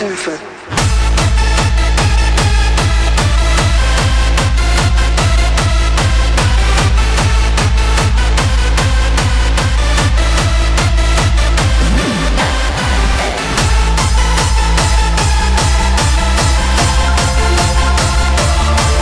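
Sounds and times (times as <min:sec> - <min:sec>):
synth chords: 0:00.0 - 0:19.0
distorted kick drum: 0:00.7 - 0:19.0.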